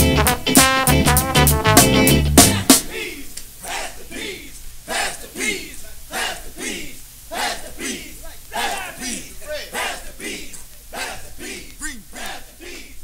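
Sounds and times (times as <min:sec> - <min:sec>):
crowd chanting: 0:02.5 - 0:13.0.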